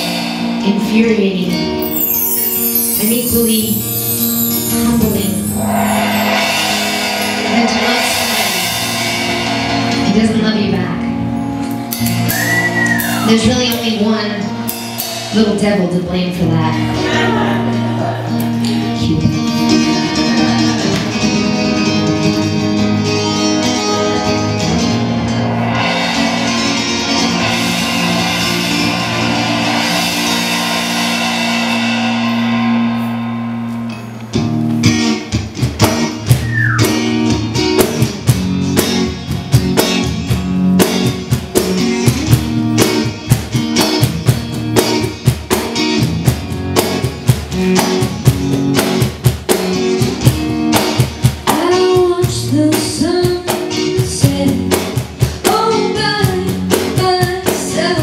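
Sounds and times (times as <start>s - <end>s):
drum kit beat: 0.0s - 18.6s, 23.0s - 58.0s
electric guitar chords: 0.0s - 58.0s
cymbal wash: 1.8s - 11.2s, 24.2s - 34.8s.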